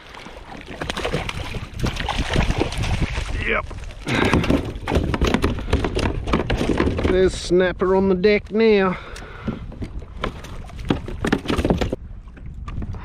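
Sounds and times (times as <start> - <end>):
water splashing: 0.0 - 6.8
knocks and clatters on kayak: 0.5 - 7.6, 9.2 - 13.0.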